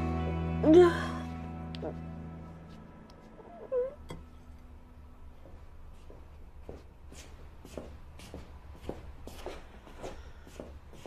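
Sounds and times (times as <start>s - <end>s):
soft background music: 0.0s - 6.7s.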